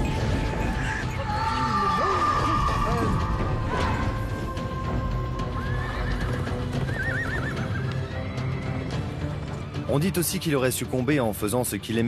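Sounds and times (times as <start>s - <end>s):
background music: 0.0s - 12.0s
horse whinnying: 5.5s - 8.9s.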